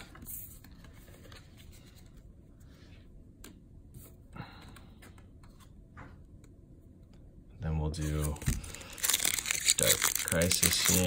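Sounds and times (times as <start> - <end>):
trading cards clicking and rustling: 8.1 - 11.0.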